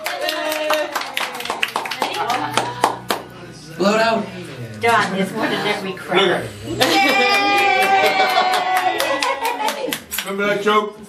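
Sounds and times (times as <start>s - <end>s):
hand clapping: 0.0s - 3.3s, 7.0s - 10.4s
person cheering: 6.8s - 9.7s.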